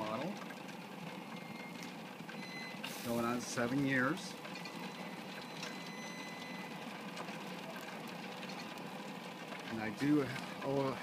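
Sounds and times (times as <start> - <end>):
gas burners hissing: 0.0 - 11.0
rotisserie motor whirring: 0.0 - 11.0.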